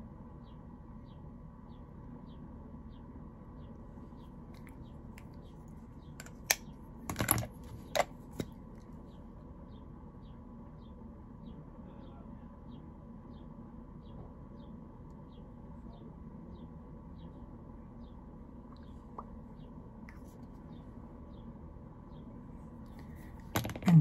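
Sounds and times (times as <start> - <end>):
low room hum: 0.0 - 24.0.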